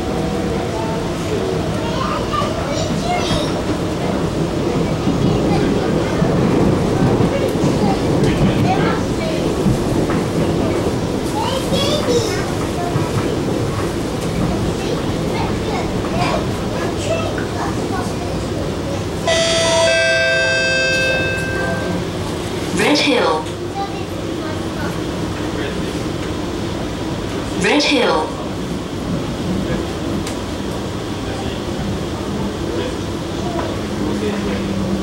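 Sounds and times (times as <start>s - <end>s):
train wheels rumbling on track: 0.0s - 35.0s
two-note descending chime: 19.3s - 22.0s.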